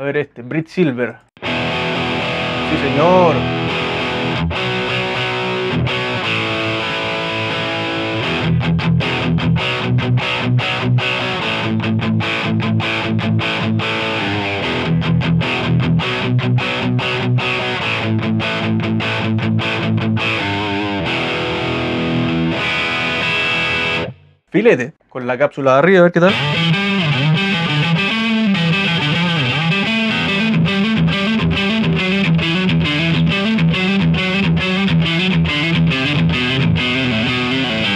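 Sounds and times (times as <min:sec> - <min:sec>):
distorted electric guitar chords: 0:01.4 - 0:24.4, 0:26.2 - 0:37.9.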